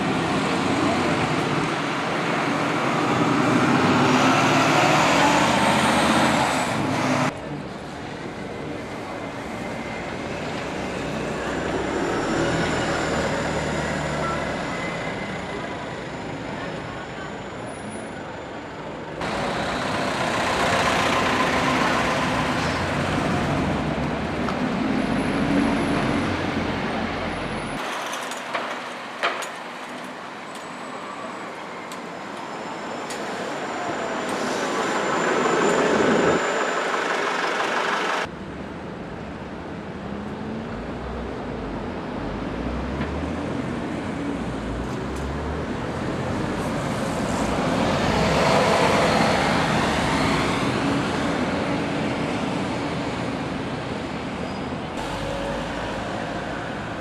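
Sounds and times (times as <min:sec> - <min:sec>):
diesel buses running: 0:00.0 - 0:57.0
traffic noise: 0:00.0 - 0:57.0.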